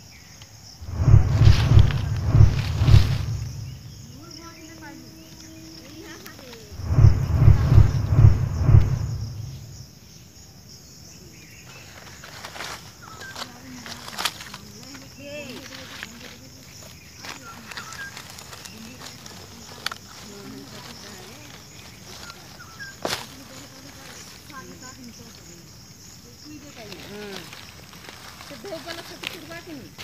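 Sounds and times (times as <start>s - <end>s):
low rumble on microphone: 0.8s - 4.2s, 6.7s - 9.8s
dry leaves crackling and rustling: 0.8s - 6.8s, 11.7s - 30.0s.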